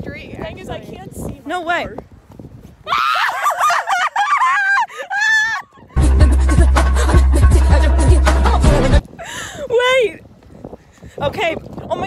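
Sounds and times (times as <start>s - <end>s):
woman screaming with excitement: 2.9s - 6.0s.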